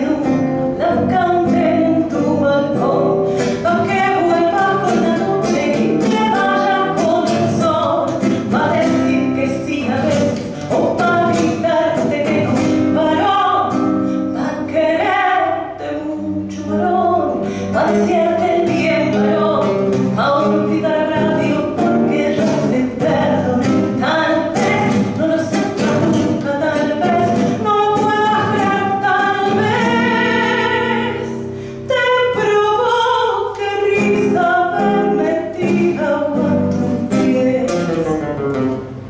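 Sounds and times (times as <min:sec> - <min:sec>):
woman singing a tango: 0:00.0 - 0:38.7
nylon-string guitar: 0:00.0 - 0:39.0.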